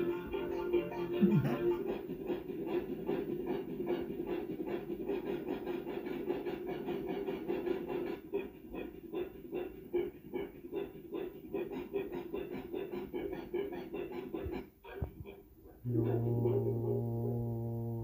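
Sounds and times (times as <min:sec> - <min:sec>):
rapid rhythmic panting: 0:00.0 - 0:18.0.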